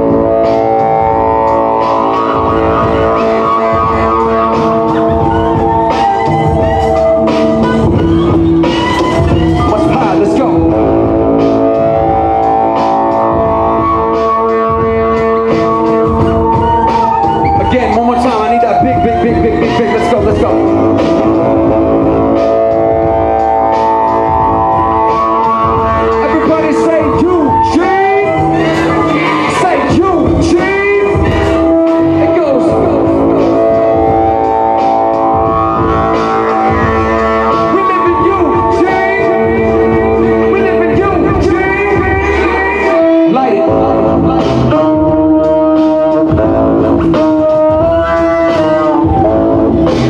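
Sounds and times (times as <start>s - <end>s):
saxophone holding long notes: 0.0s - 9.7s, 10.6s - 50.0s
keyboard: 0.0s - 50.0s
live band playing instrumental: 0.0s - 50.0s
upright bass: 0.0s - 50.0s.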